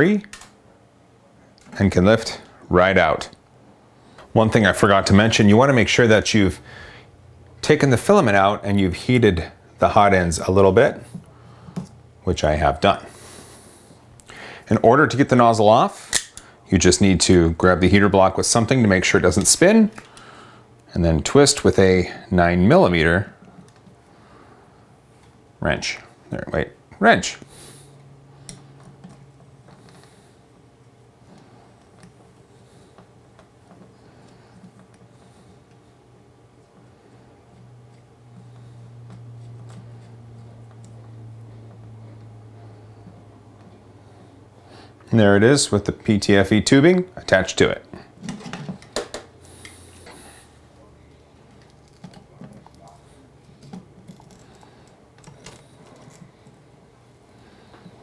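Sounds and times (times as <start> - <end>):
faint low hum: 0.0 - 58.0.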